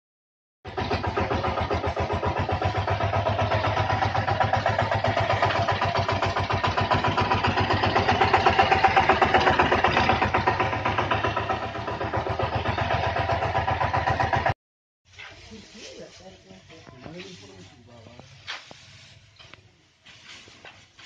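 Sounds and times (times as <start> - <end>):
diesel engine chugging: 0.6 - 14.6.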